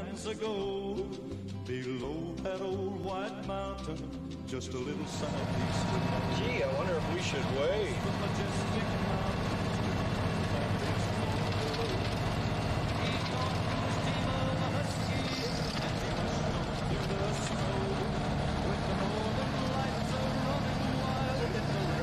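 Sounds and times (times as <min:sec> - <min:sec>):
truck engine drone: 0:00.0 - 0:22.0
road noise: 0:04.7 - 0:22.0.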